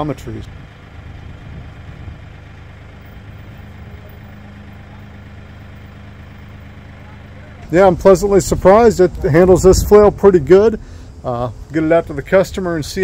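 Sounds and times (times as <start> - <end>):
steady higher hum: 0.0 - 13.0
tractor diesel engine idling: 0.0 - 13.0.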